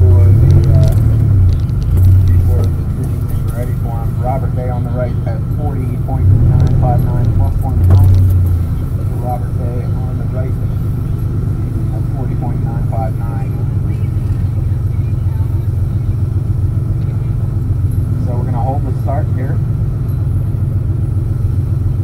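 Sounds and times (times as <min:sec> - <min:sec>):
car engine idling: 0:00.0 - 0:22.0
faint announcer voice: 0:02.0 - 0:19.7.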